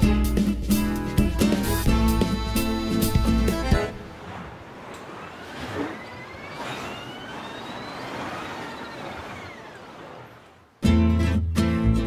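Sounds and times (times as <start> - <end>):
faint gliding high tones: 5.1 - 10.6.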